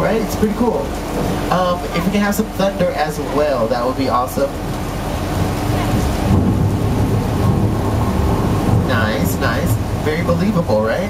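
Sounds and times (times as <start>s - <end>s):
low thunder rumble: 0.0s - 11.0s
water falling from sprinkler: 0.0s - 11.0s.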